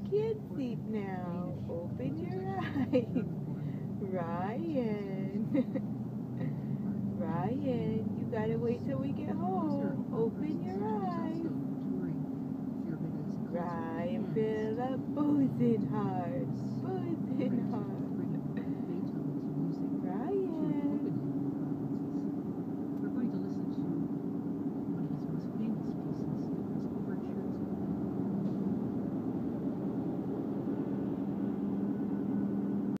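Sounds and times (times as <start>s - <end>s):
voice: 0.0s - 3.3s, 4.0s - 5.8s, 6.4s - 12.2s, 12.8s - 22.2s, 23.0s - 24.1s, 25.0s - 27.8s
car engine and road drone: 0.0s - 33.0s
low hum: 0.0s - 33.0s.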